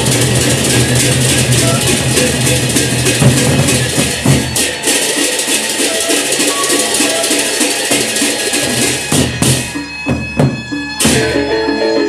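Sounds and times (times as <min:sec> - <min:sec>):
barrel drums beaten with sticks: 0:00.0 - 0:11.6
rapid cymbal clashing: 0:00.0 - 0:11.6.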